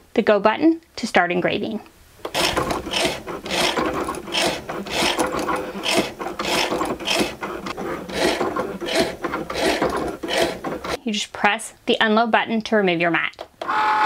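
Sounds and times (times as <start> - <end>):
machine motors humming: 2.2 - 11.0
engraving tip scratching metal: 2.3 - 11.0.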